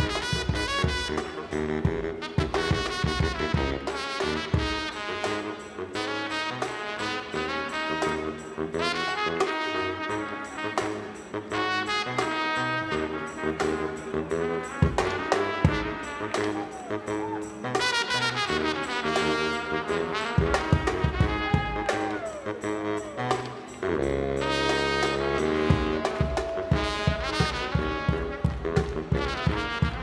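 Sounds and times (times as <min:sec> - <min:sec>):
drum and percussion beat: 0:00.0 - 0:05.6, 0:10.4 - 0:30.0
baritone saxophone notes: 0:00.0 - 0:30.0
trumpet with pitch glides: 0:00.0 - 0:30.0.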